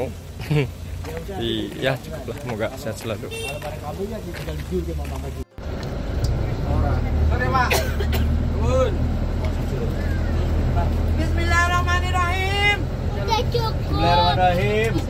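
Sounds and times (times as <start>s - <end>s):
bus engine and road rumble: 0.0s - 15.0s
passengers talking: 0.0s - 15.0s.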